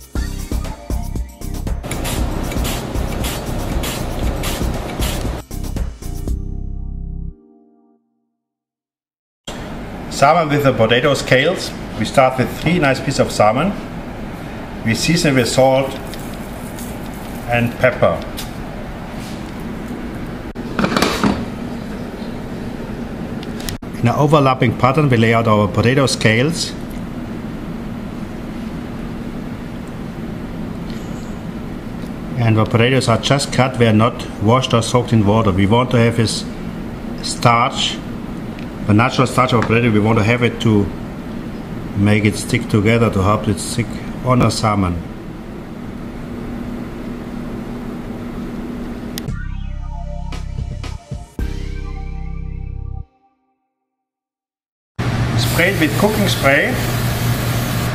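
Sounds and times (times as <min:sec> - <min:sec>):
background music: 0:00.0 - 0:08.2, 0:49.3 - 0:53.4
steady low hum: 0:01.8 - 0:05.4.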